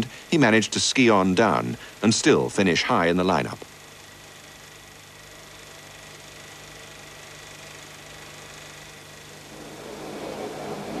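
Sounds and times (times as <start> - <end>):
film soundtrack hiss and hum: 0.0 - 11.0.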